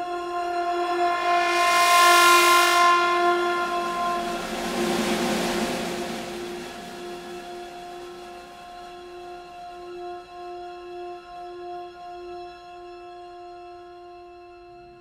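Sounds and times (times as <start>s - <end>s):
orchestra holding loud chord: 0.0s - 9.6s
percussion noise wash: 0.0s - 10.0s.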